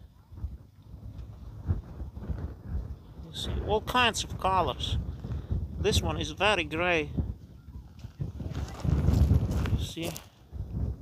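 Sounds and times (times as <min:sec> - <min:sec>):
wind rumble on microphone: 0:00.0 - 0:11.0
footsteps crunching on rock: 0:08.0 - 0:10.4.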